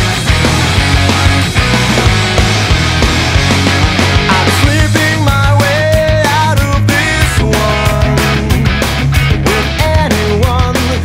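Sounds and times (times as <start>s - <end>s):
bass: 0.0s - 11.0s
distorted electric guitars: 0.0s - 11.0s
drum hits: 0.0s - 11.0s.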